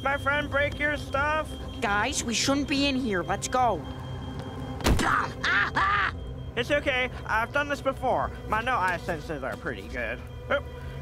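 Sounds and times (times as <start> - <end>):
faint background music: 0.0 - 11.0
sharp thud: 4.8 - 5.2.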